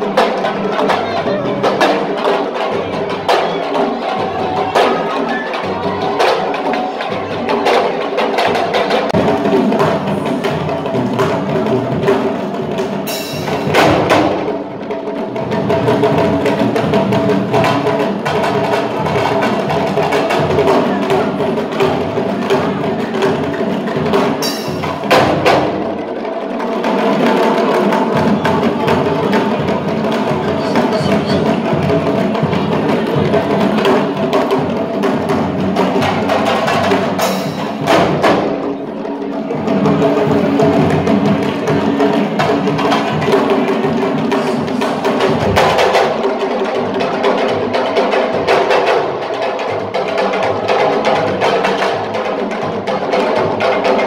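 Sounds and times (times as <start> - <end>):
drums in fast rhythm: 0.0 - 54.0.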